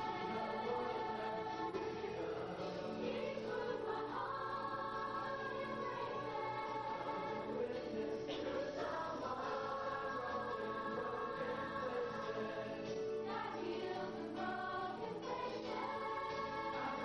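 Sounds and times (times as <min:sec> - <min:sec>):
choir singing held notes: 0:00.0 - 0:17.0.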